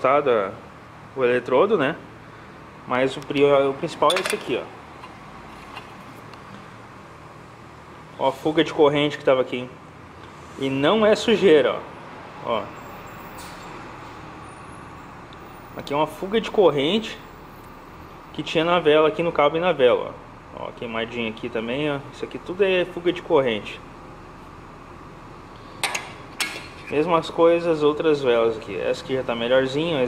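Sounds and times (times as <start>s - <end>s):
low background hum: 0.0s - 30.0s.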